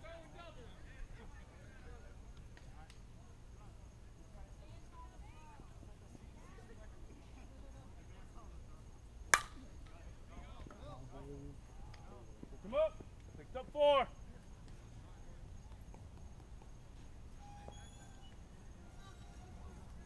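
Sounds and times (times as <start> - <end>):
bat striking ball: 9.3 - 9.6.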